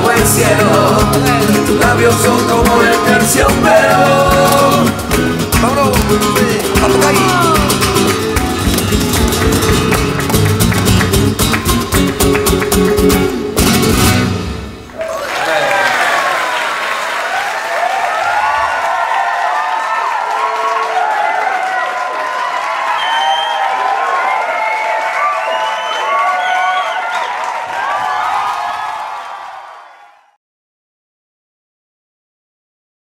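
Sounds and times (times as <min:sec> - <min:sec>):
flamenco guitar: 0:00.0 - 0:14.9
audience applauding and cheering: 0:00.0 - 0:30.4.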